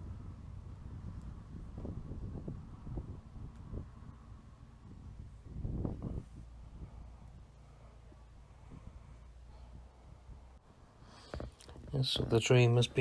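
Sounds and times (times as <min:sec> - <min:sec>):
wind buffeting microphone: 0:00.0 - 0:10.6
distant motorway traffic rumble: 0:00.0 - 0:13.0.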